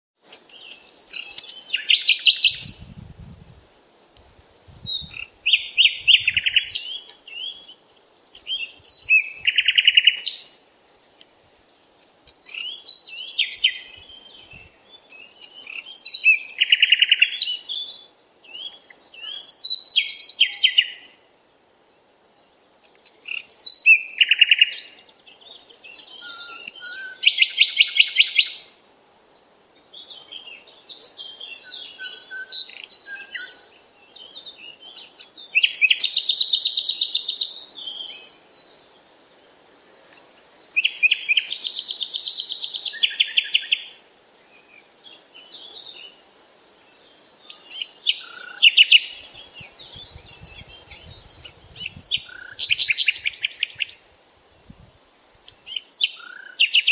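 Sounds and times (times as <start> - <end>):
songbird trilling song: 0.2 - 54.2, 54.8 - 56.9.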